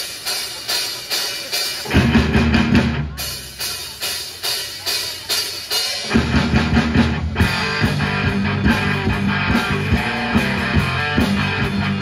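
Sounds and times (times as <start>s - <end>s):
bass guitar: 0.0s - 4.1s, 6.0s - 12.0s
drum kit beats: 0.0s - 12.0s
electric guitar: 6.1s - 12.0s.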